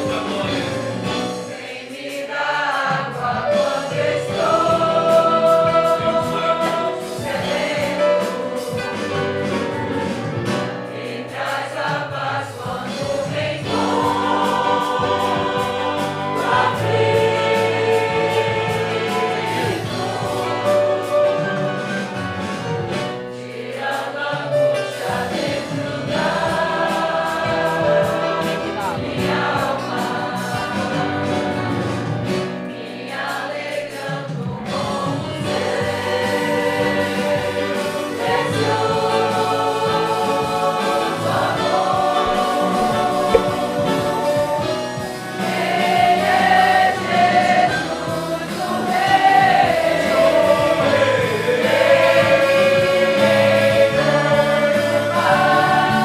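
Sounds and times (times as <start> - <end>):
congregation singing a hymn: 0.0 - 56.0
acoustic guitars: 34.6 - 56.0.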